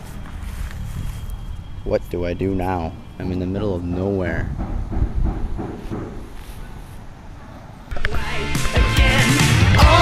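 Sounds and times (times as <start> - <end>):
wind buffeting microphone: 0.0 - 7.9.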